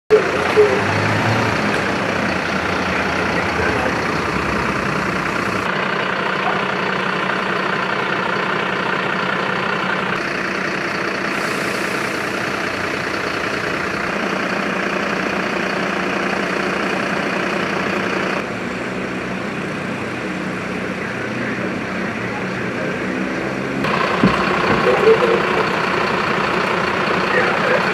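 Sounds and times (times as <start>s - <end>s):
emergency vehicle engines running: 0.1s - 27.9s
heavy truck idling: 0.1s - 27.9s.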